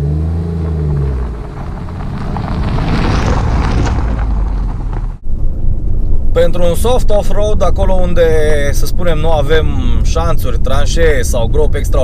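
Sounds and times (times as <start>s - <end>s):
car engine running: 0.0s - 6.0s
tyres on gravel: 0.6s - 5.2s.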